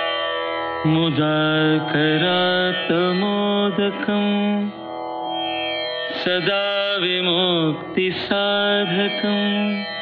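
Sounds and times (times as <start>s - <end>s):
person singing a devotional chant: 0.6s - 4.9s, 6.1s - 10.0s.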